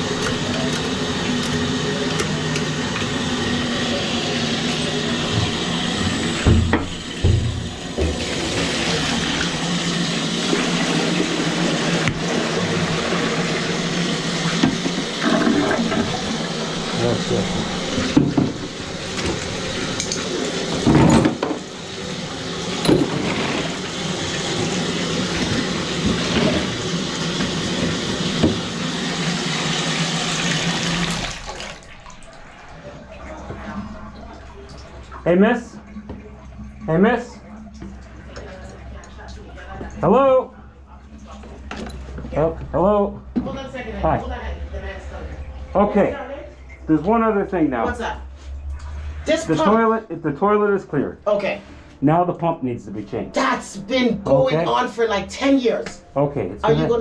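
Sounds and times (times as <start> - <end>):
water rushing: 0.0 - 40.1
low motor hum: 0.0 - 50.2.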